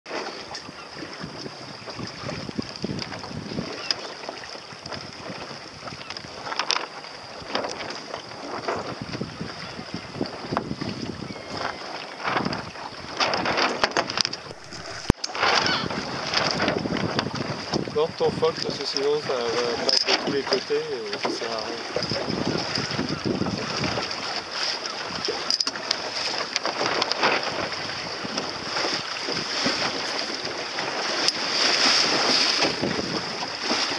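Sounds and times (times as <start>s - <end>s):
water slapping against boat hull: 0.1s - 33.9s
wind buffeting microphone: 0.6s - 3.8s, 7.5s - 25.4s, 31.6s - 33.9s.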